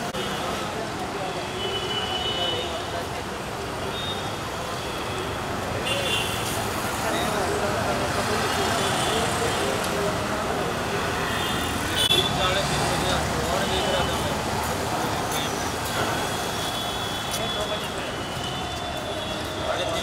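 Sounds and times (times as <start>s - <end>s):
people talking: 0.0s - 20.0s
street traffic: 0.0s - 20.0s.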